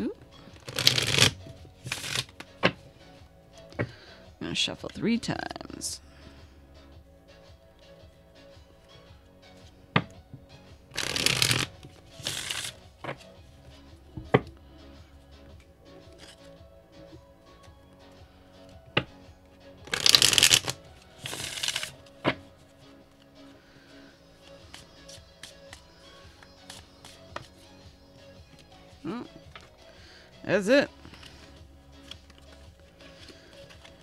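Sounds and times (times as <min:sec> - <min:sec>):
cards being shuffled: 0:00.6 - 0:02.8, 0:10.9 - 0:13.3, 0:15.5 - 0:16.5, 0:19.9 - 0:22.4, 0:24.6 - 0:27.6, 0:31.1 - 0:34.0.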